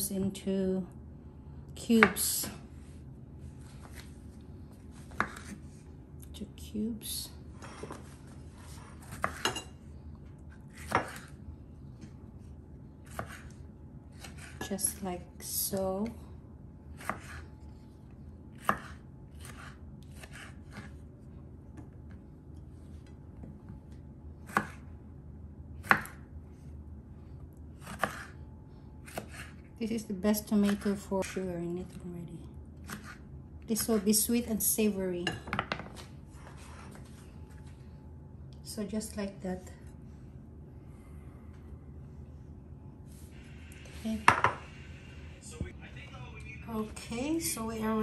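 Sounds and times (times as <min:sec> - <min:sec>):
faint low hum: 0:00.0 - 0:48.0
knife cutting a tomato: 0:05.0 - 0:05.7, 0:10.7 - 0:11.4, 0:13.1 - 0:13.6, 0:17.0 - 0:17.4, 0:18.6 - 0:21.0, 0:24.4 - 0:24.9, 0:25.8 - 0:26.2, 0:27.8 - 0:28.4, 0:29.0 - 0:29.6, 0:32.8 - 0:33.2.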